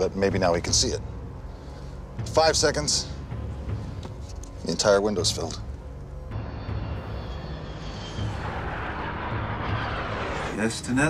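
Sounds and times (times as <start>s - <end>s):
dramatic music with pulsing beat: 0.0s - 11.0s
jet aircraft noise: 8.1s - 10.9s.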